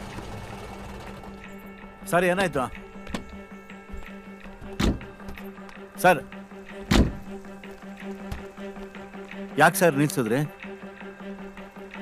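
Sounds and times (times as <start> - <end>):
car door shutting: 3.0 - 5.5, 6.8 - 7.4.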